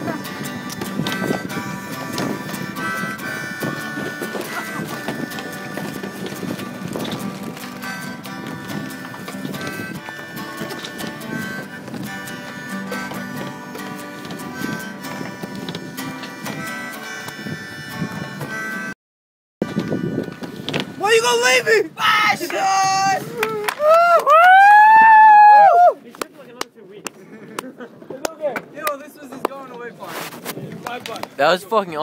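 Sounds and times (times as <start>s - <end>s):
acoustic guitar strumming: 0.0s - 19.0s, 19.6s - 21.8s
harmonica wavering notes: 0.0s - 19.0s, 19.6s - 21.8s.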